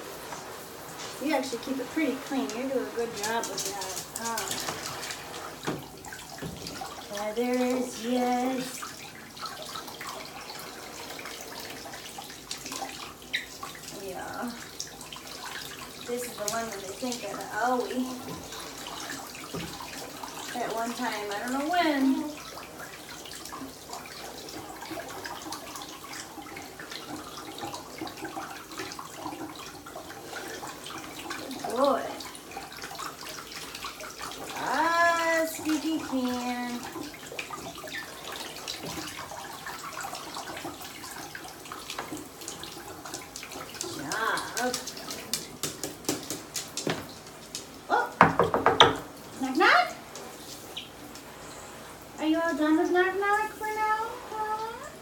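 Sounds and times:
shower spraying water: 0:00.0 - 0:55.0.

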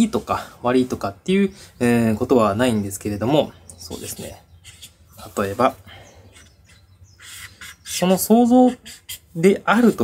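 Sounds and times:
marker squeaking on paper: 0:03.8 - 0:09.5.

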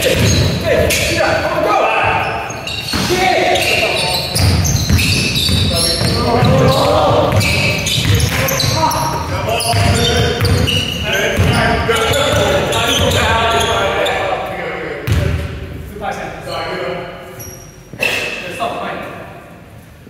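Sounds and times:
players calling out: 0:00.0 - 0:15.4
basketball bouncing on wooden floor: 0:04.3 - 0:13.2, 0:15.0 - 0:15.4.

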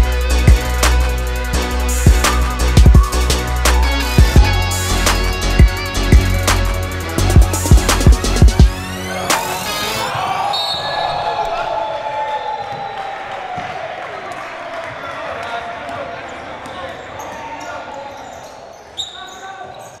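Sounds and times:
voices in a large hall: 0:08.9 - 0:20.0.

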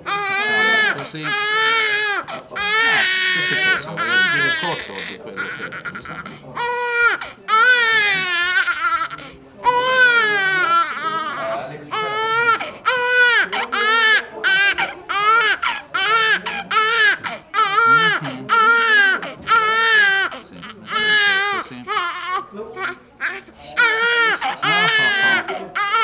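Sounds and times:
infant crying: 0:00.0 - 0:26.0.

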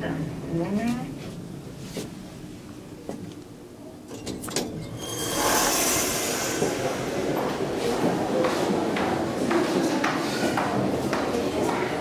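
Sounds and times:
elevator doors sliding open: 0:04.1 - 0:08.4
rush of noise: 0:04.9 - 0:08.9.

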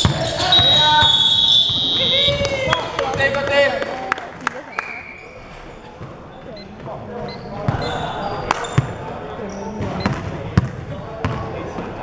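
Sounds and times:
sneakers squeaking: 0:00.0 - 0:03.3, 0:04.8 - 0:11.5.

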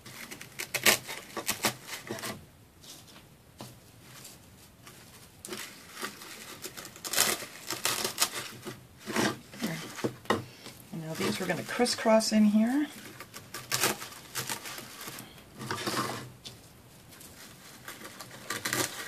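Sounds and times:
artificial pine picks rustling: 0:00.0 - 0:19.0.

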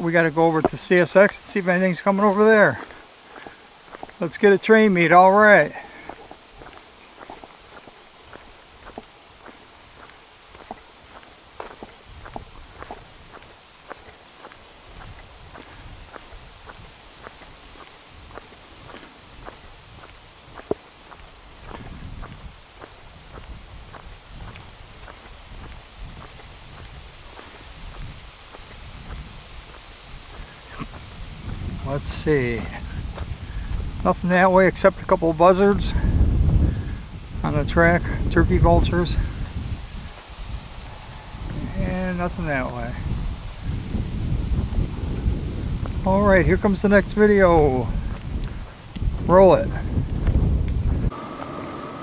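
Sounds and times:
footsteps on asphalt: 0:00.0 - 0:36.7, 0:39.1 - 0:52.0.

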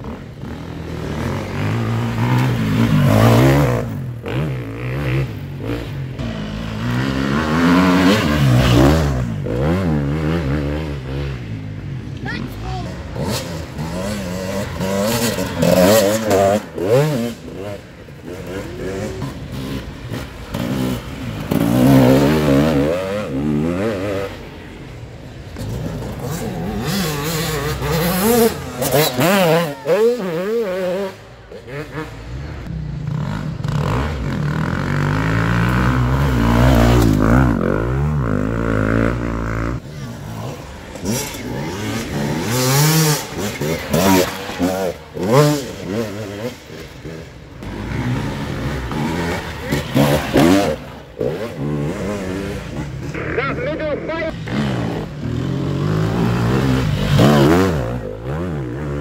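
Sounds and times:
dirt bikes revving: 0:00.0 - 0:59.0.

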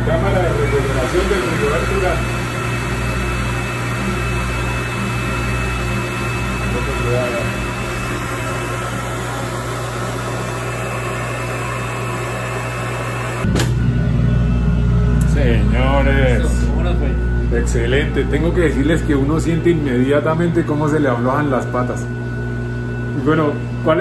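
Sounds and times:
machine humming with hiss: 0:00.0 - 0:24.0
low rumble: 0:13.4 - 0:19.4.

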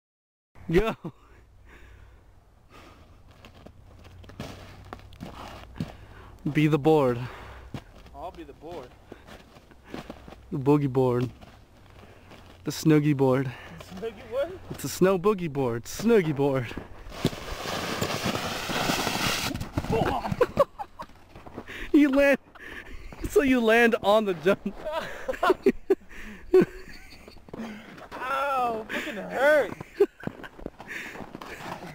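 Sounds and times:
feet shuffling on snow: 0:03.3 - 0:06.1, 0:16.0 - 0:20.0
soft thuds in snow: 0:17.1 - 0:20.5
board scraping over snow: 0:17.1 - 0:20.6.

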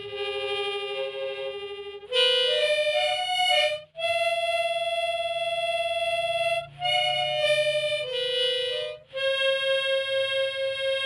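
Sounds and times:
reedy wind instrument melody: 0:00.0 - 0:11.0.

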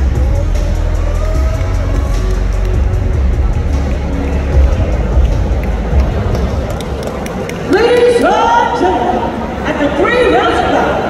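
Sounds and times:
arena crowd murmur: 0:00.0 - 0:11.0
low background music: 0:00.0 - 0:11.0.

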